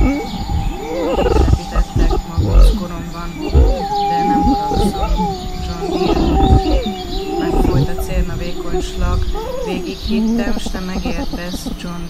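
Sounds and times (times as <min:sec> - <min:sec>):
low thumps: 0:00.0 - 0:10.6
woman vocalizing wordlessly: 0:00.0 - 0:12.0.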